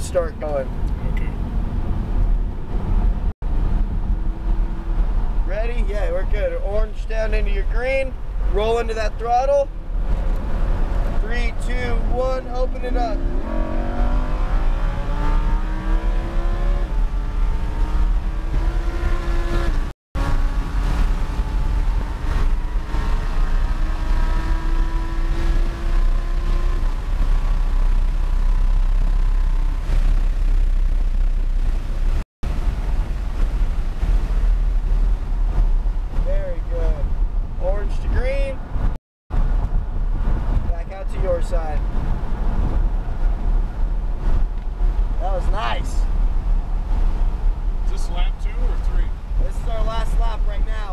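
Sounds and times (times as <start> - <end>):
car engine at full throttle: 0.0 - 50.9
wind and road noise: 0.0 - 50.9.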